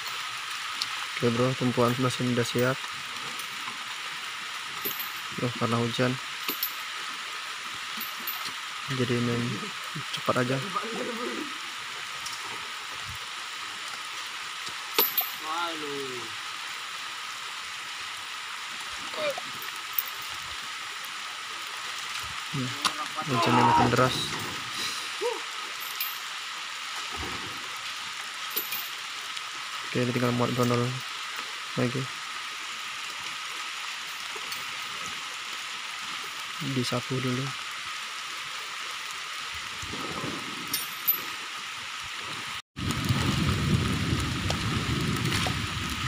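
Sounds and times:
heavy rain falling: 0.0s - 46.0s.

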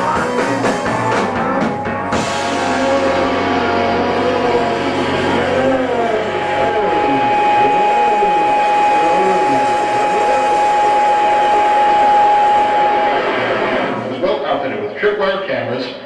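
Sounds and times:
electric guitar feedback tone: 0.0s - 15.2s
amplifier noise with sweeps: 0.0s - 16.0s.

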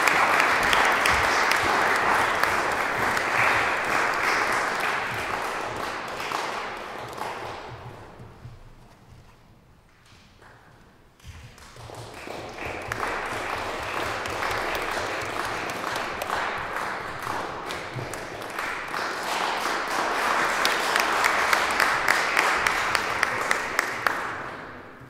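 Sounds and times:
audience applause: 0.0s - 8.2s, 11.6s - 25.0s.

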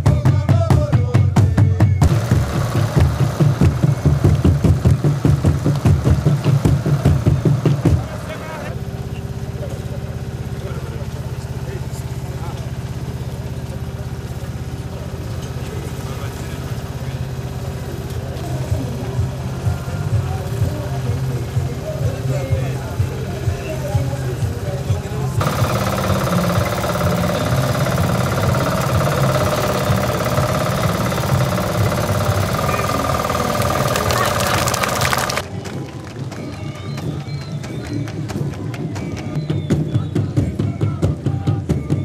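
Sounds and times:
music with steady drum beat: 0.0s - 8.4s, 18.7s - 35.4s, 37.4s - 42.0s
machinery engine running: 2.0s - 35.6s
crowd voices: 2.0s - 42.0s.

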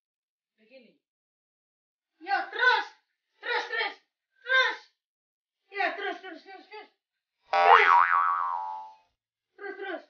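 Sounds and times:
springy boing sound effect: 7.6s - 9.0s.

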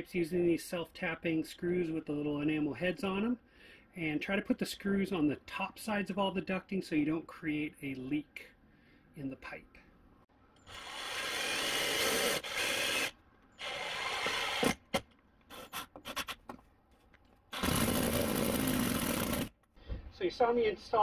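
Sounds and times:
cordless drill driving screws: 10.6s - 16.4s, 17.5s - 19.5s.

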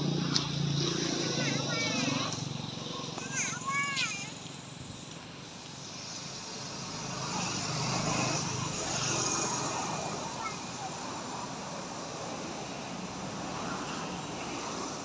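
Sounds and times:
road vehicle passing: 0.0s - 15.0s.

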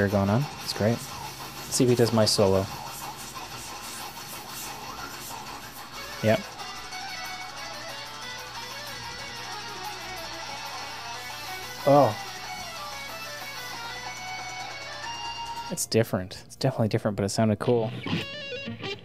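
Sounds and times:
electric guitar metal riffs: 4.1s - 15.6s, 17.6s - 19.0s.

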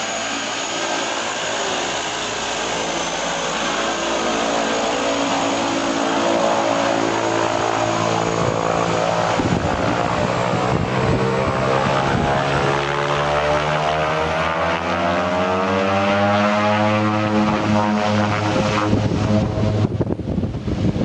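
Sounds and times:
turboprop engines and propellers: 0.0s - 21.0s.

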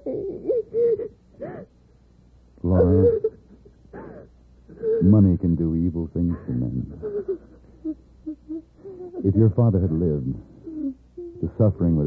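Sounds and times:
woman sobbing: 0.0s - 1.7s, 2.7s - 5.2s, 6.3s - 11.5s.

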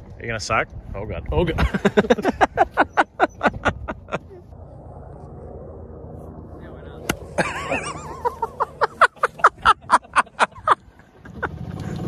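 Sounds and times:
people laughing: 1.6s - 4.5s, 7.4s - 11.6s
golf cart engine drone: 1.6s - 12.0s.

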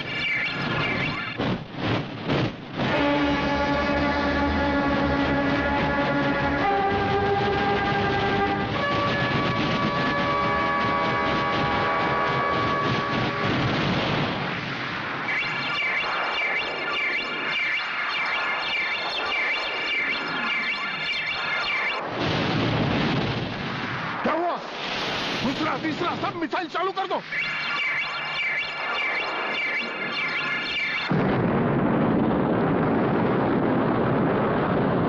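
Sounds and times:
high warbling electronic tone: 0.0s - 1.4s, 15.2s - 22.1s, 27.2s - 31.2s
loud rumbling noise: 0.0s - 16.9s, 22.0s - 26.4s, 29.3s - 35.0s.

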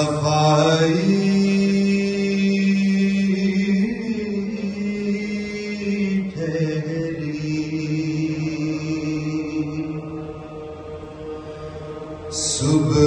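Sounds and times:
man chanting in long held notes: 0.0s - 13.0s.

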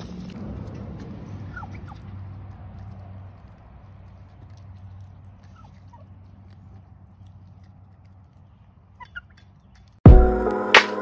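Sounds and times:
turkeys pecking at steel bowl: 0.0s - 10.0s
turkey high calls: 5.5s - 6.0s.

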